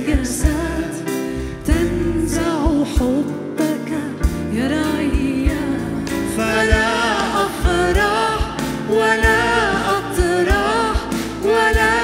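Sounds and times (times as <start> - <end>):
drum kit beats: 0.0 - 12.0
keyboard: 0.0 - 12.0
singers singing melody: 5.0 - 12.0.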